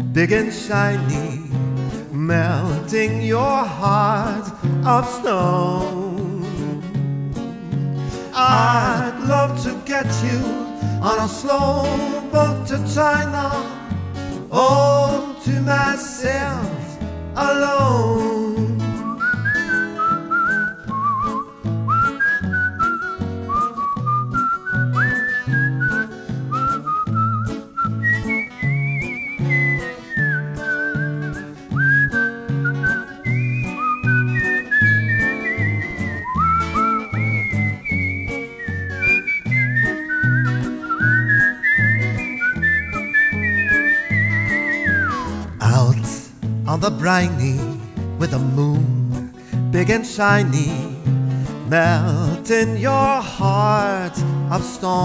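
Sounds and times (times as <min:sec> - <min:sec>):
whistled melody: 0:18.8 - 0:45.6.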